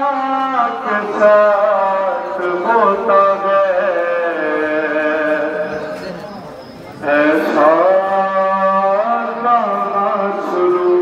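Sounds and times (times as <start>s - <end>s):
man singing a lament: 0.0s - 6.0s, 7.0s - 11.0s.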